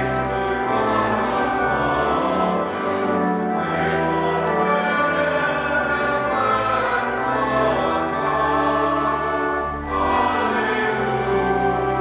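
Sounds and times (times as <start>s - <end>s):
congregation singing a hymn: 0.0s - 12.0s
pipe organ: 0.0s - 12.0s.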